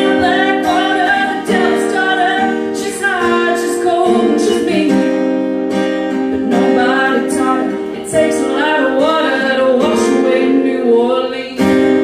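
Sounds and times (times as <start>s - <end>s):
acoustic guitar strumming: 0.0s - 12.0s
woman singing into microphone: 0.0s - 12.0s.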